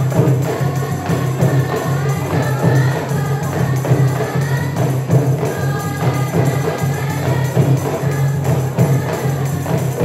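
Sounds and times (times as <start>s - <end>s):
women singing devotional song: 0.0s - 10.0s.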